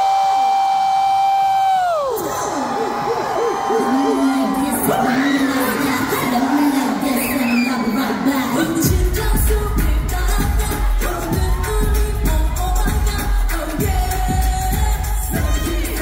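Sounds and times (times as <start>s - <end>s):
women singing: 4.3s - 16.0s
pop backing track: 8.6s - 16.0s
heavy bass beat: 8.8s - 16.0s.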